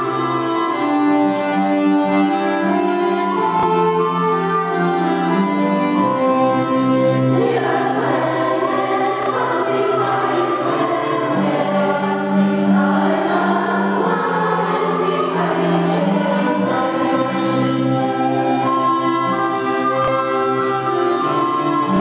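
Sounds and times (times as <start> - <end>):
children's choir singing: 7.1 - 18.8.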